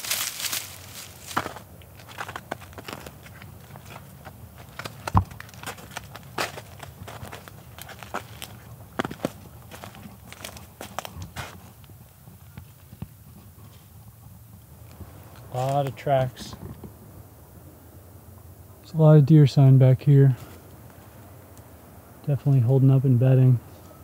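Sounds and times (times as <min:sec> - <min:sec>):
footsteps crunching through leaves: 0:00.0 - 0:12.1.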